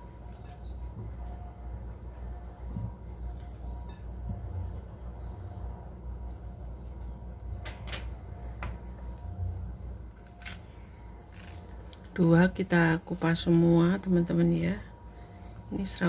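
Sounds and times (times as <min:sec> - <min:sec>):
bananas being peeled: 0:00.0 - 0:01.4, 0:10.1 - 0:13.2
low steady hum: 0:00.0 - 0:16.0.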